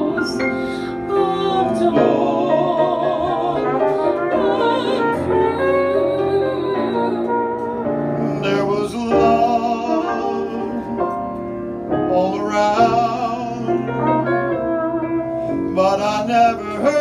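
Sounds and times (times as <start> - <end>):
man and woman singing duet: 0.0 - 10.8, 12.1 - 14.2, 15.7 - 17.0
piano accompaniment: 0.0 - 17.0.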